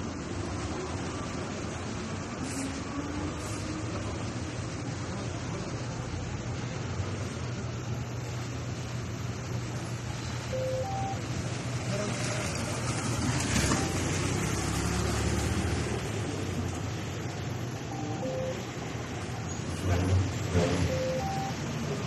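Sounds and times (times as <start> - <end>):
low hum of road traffic: 0.0 - 22.0
vehicle passing: 11.2 - 22.0.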